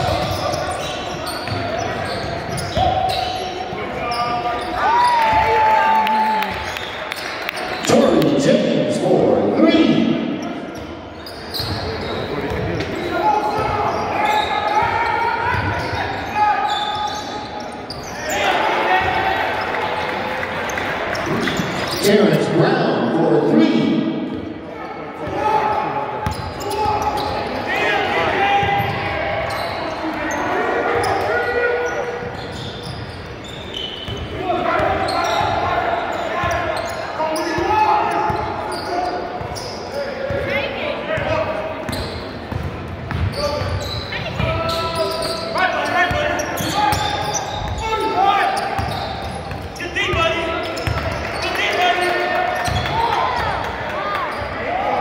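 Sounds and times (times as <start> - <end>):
sneakers squeaking: 0.0 - 5.7, 6.4 - 8.8, 9.6 - 22.6, 23.8 - 55.0.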